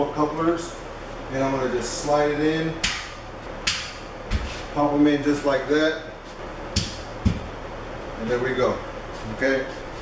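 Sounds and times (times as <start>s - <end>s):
dull knocks: 6.8s - 7.5s.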